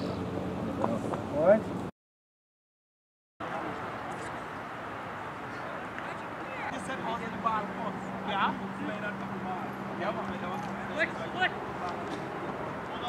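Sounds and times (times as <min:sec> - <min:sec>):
outdoor background noise: 0:00.0 - 0:01.9, 0:03.4 - 0:13.0.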